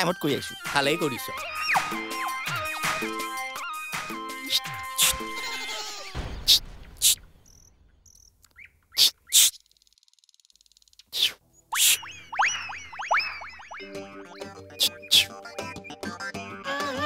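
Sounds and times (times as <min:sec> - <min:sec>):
swooping pitch glides: 0:11.7 - 0:16.0.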